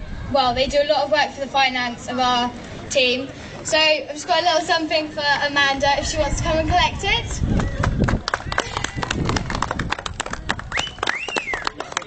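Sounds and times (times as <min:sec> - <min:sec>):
small group clapping: 0:07.5 - 0:12.0.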